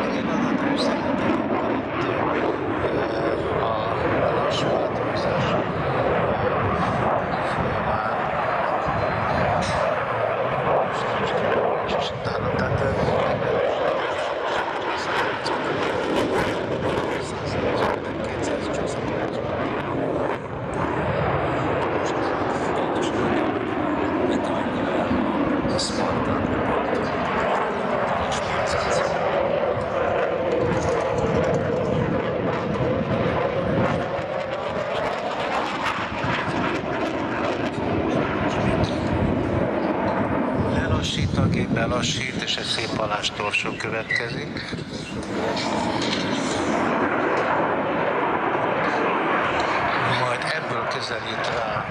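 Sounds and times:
jet engine roar: 0:00.0 - 0:51.9.

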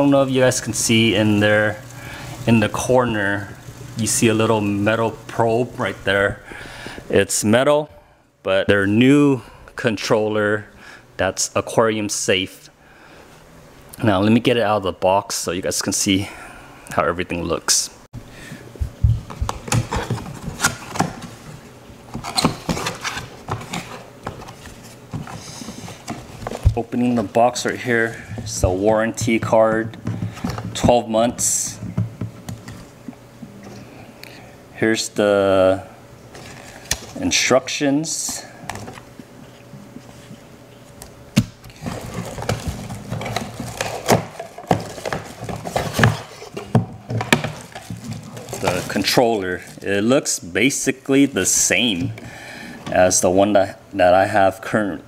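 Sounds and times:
cardboard packaging handled: 0:19.2 - 0:30.9, 0:41.7 - 0:50.2.

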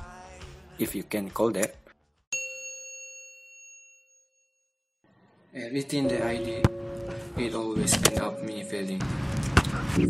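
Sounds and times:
bell-like chime ringing: 0:02.3 - 0:04.9.

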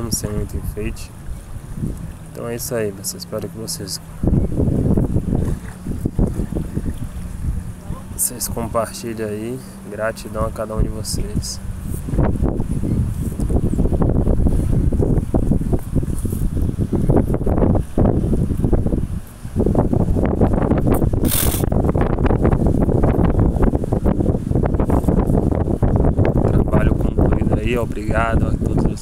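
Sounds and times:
wind buffeting microphone: 0:00.0 - 0:29.0
short hiss: 0:21.2 - 0:21.7.

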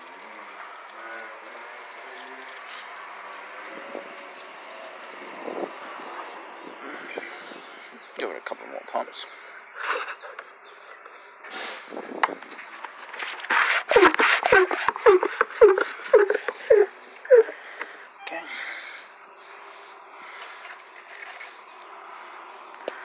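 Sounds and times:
hand pump squeaking and clicking: 0:13.1 - 0:18.4.

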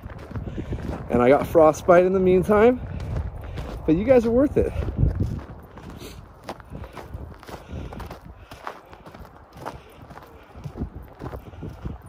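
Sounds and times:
footsteps in snow: 0:00.0 - 0:12.0
wind rumble on microphone: 0:00.0 - 0:12.0.

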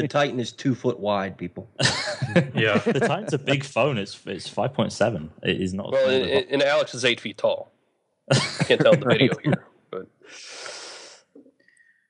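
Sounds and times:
person exhaling: 0:10.3 - 0:12.0.

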